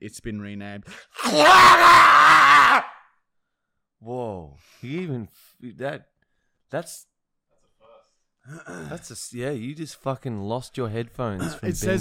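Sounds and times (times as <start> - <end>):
man screaming raspily: 1.1 - 3.0.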